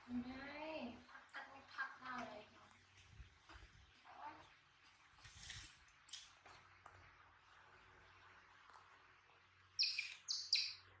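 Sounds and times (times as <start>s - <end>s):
baby monkey squeaking: 9.8s - 10.9s.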